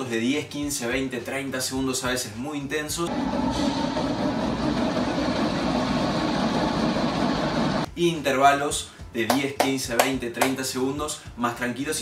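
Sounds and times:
treadmill motor and belt running: 3.1 - 7.9.

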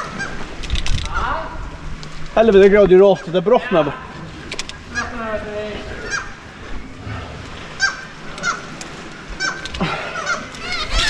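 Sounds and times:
seabirds calling: 0.0 - 11.0.

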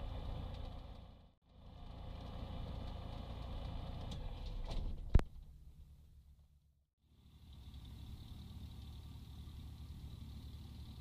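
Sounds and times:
propeller engine idling: 7.0 - 11.0.

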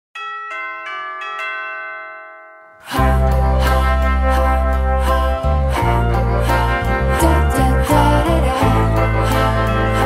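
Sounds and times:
bell-like chime jingle: 0.2 - 6.1.

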